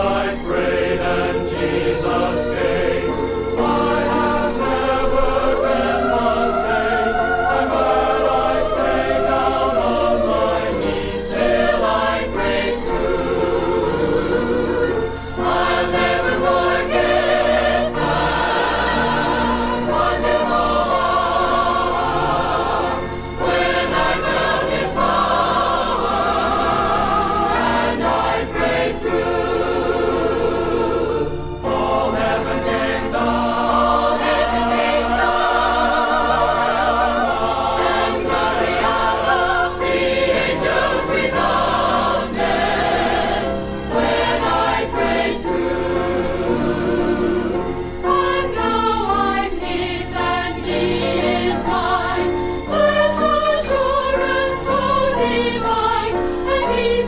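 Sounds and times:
choir singing gospel song: 0:00.0 - 0:57.0.

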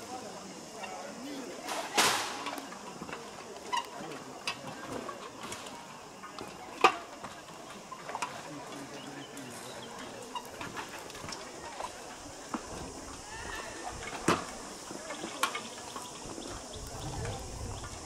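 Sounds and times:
faint voices: 0:00.0 - 0:18.0
footsteps on plank walkway: 0:03.0 - 0:18.0.

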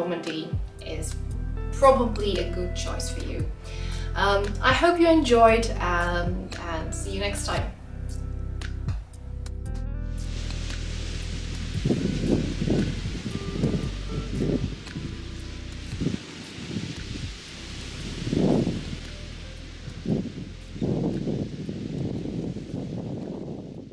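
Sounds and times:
hiss of wind: 0:00.0 - 0:23.9
small surf on beach: 0:10.2 - 0:23.8
wind buffeting microphone: 0:10.3 - 0:23.9.

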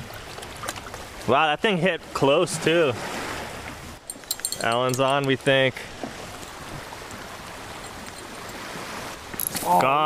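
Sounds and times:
gentle waves washing at shoreline: 0:00.0 - 0:10.0.

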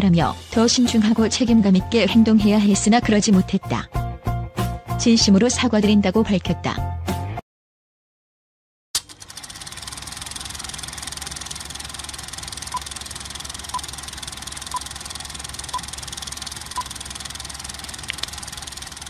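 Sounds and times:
film projector clattering: 0:09.0 - 0:19.0
short high clicks: 0:11.4 - 0:19.0.

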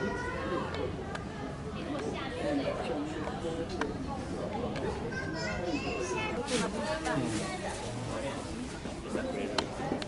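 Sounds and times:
children chattering: 0:00.0 - 0:10.0
visitors talking: 0:00.0 - 0:10.0.

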